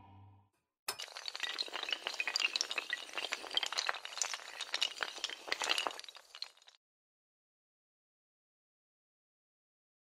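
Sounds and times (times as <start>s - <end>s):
dominoes toppling: 1.0s - 6.8s.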